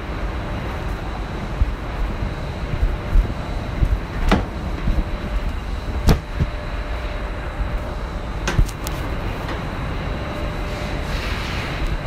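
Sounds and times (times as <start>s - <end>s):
low machinery rumble: 0.0s - 12.0s.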